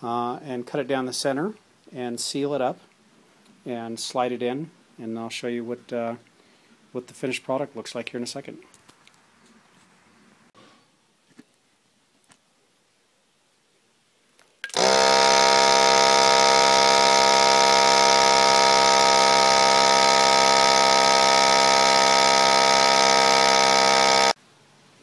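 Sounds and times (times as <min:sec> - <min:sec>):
vacuum sealer pump humming: 0:14.6 - 0:24.4.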